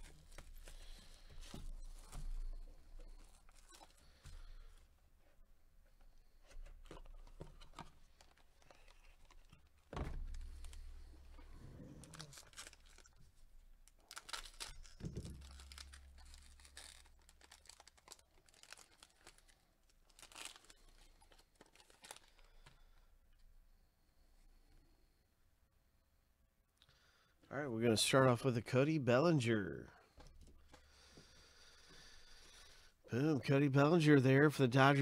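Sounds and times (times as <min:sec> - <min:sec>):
foil wrapper crinkling and tearing: 0:11.8 - 0:22.7.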